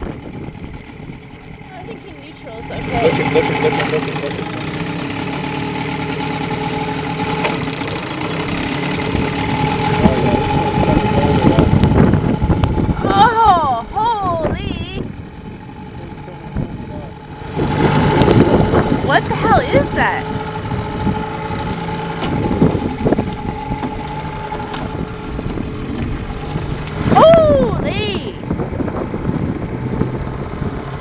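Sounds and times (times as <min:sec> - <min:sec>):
boat on choppy water: 0:00.0 - 0:31.0
outboard motor running: 0:00.0 - 0:31.0
bursts of voices: 0:27.1 - 0:28.4.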